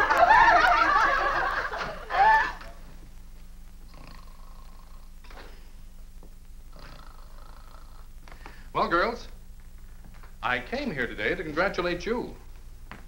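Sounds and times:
women laughing: 0:00.0 - 0:02.8
low steady hum: 0:00.0 - 0:13.0.

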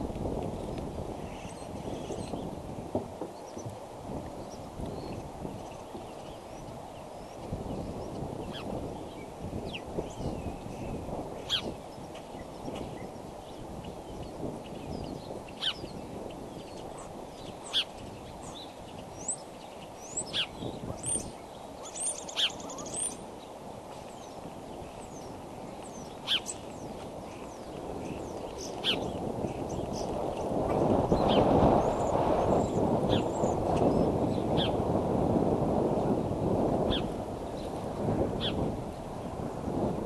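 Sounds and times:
birds chirping: 0:00.6 - 0:02.6, 0:03.3 - 0:34.8.

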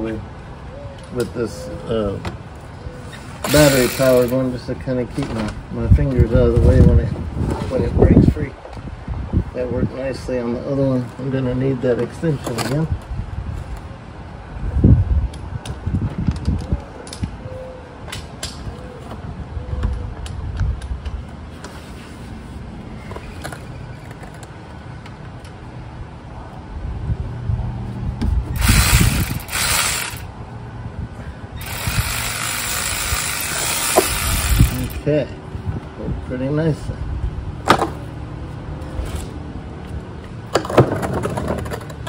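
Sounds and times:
battery-powered ratchet spinning: 0:03.4 - 0:04.3, 0:28.6 - 0:30.3, 0:31.6 - 0:35.0.

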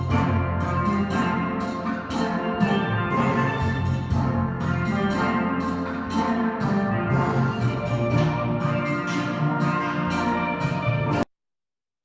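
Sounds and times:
low bass steel pans: 0:00.0 - 0:11.2.

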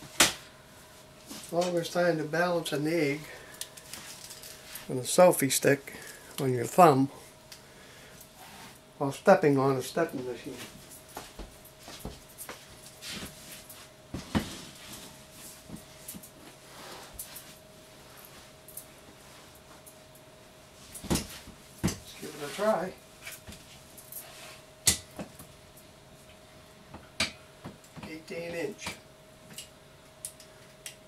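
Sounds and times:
faint steady hum: 0:00.0 - 0:31.0.

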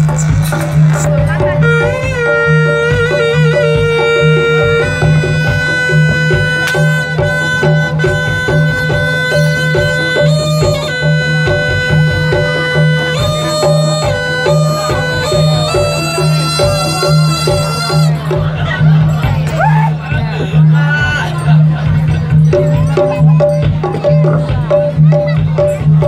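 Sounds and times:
rhythmic drumming: 0:00.0 - 0:26.0
shrill double-reed horn: 0:01.5 - 0:18.3.

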